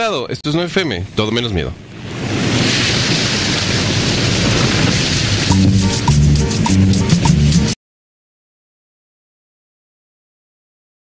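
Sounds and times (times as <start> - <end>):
loud steady rushing noise: 1.7 - 7.8.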